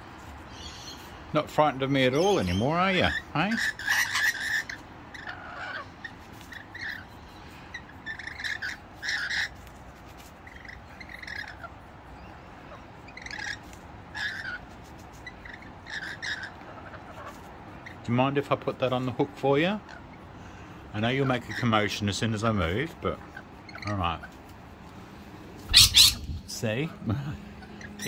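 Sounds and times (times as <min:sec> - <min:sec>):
lorikeets chirping and squawking: 0:00.3 - 0:24.5, 0:25.1 - 0:28.0.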